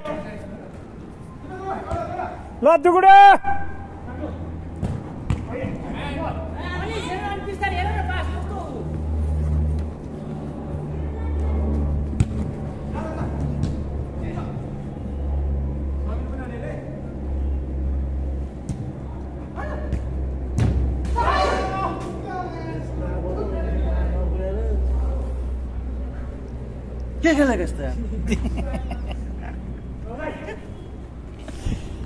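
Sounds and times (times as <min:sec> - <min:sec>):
ball kicked hard: 0:12.2 - 0:12.5
players shouting: 0:21.0 - 0:23.6.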